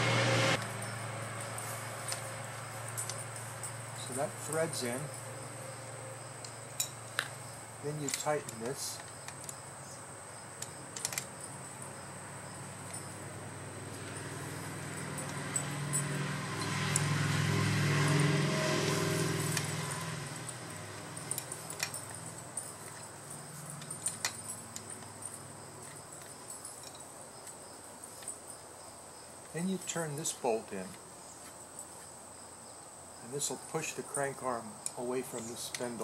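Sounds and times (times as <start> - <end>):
passing engine: 0.0 - 8.0, 11.5 - 26.6
insects chirping: 0.6 - 36.0
metallic tool clicks and clinks: 6.4 - 9.7, 12.7 - 17.1, 18.9 - 27.6.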